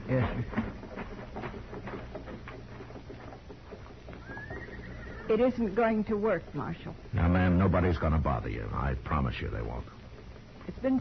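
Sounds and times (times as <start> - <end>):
faint hoof clops: 0.0 - 11.0
high horse whinny: 4.2 - 5.6.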